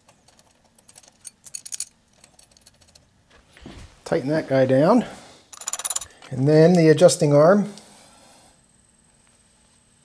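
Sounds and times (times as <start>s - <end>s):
metal bolt and washers clinking: 0.0s - 3.1s, 5.5s - 6.4s.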